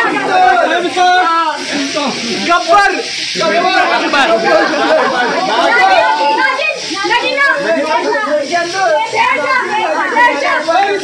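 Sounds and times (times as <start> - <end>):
young people chattering: 0.0 - 11.0.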